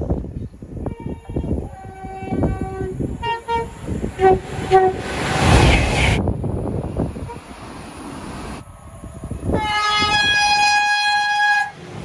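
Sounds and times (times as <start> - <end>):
electric train horn: 0.8 - 5.2, 9.5 - 12.0.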